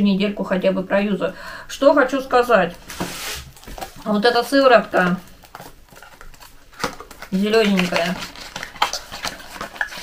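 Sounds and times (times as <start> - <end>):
cardboard box crinkling and rubbing: 2.8 - 10.0.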